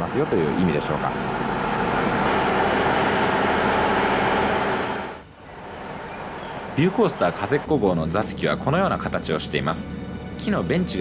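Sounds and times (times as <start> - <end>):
diesel railcar engine running: 0.0 - 11.0.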